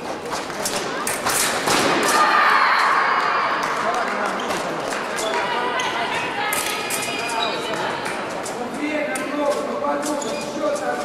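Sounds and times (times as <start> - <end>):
indistinct echoing voices: 0.0 - 11.0.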